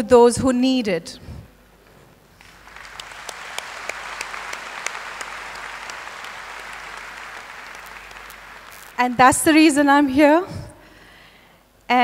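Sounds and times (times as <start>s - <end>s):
audience applauding: 2.4s - 9.1s.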